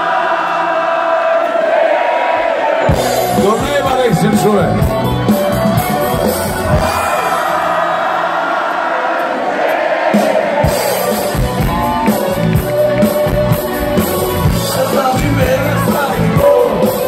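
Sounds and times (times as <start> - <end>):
crowd singing and cheering: 0.0 - 17.0
live rock band playing: 2.9 - 7.7, 10.2 - 17.0.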